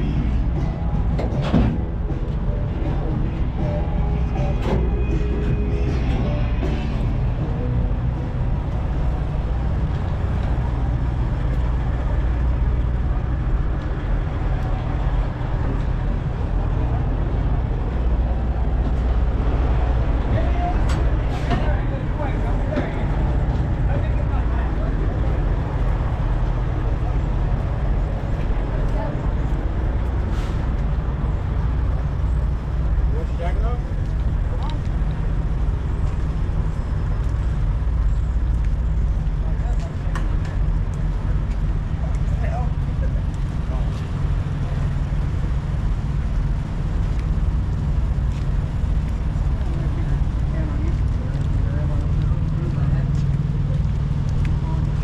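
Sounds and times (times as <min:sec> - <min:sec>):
diesel truck engines idling: 0:00.0 - 0:55.0.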